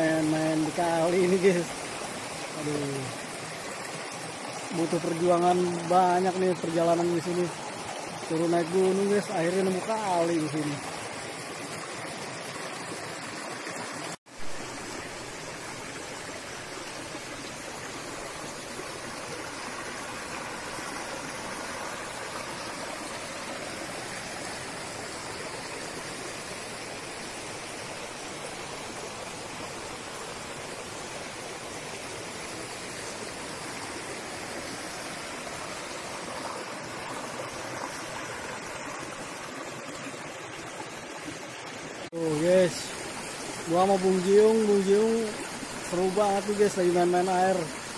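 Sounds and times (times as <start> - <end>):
stream rushing over stones: 0.0 - 47.9.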